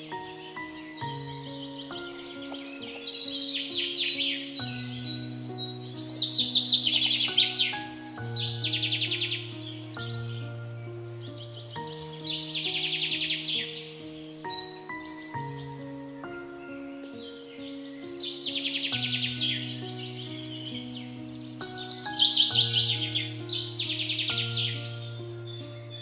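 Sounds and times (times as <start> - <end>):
bird chirping trills: 0.0 - 26.0
slow sustained chords music: 0.0 - 26.0.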